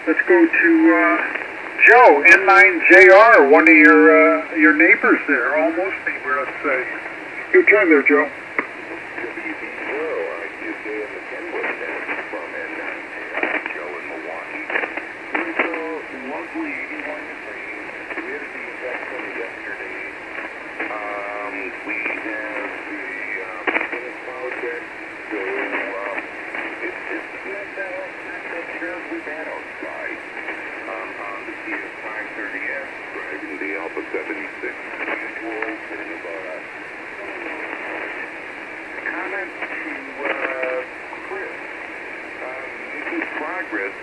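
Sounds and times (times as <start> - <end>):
radio band noise hiss: 0.0 - 44.0
thin radio speech: 0.0 - 44.0.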